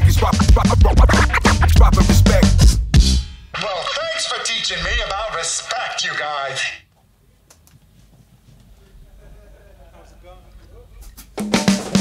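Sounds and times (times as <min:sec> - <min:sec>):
record scratching on turntable: 0:00.0 - 0:02.8, 0:03.6 - 0:06.2
live band with drum kit: 0:00.0 - 0:03.6, 0:11.1 - 0:12.0
man speaking: 0:03.6 - 0:06.8.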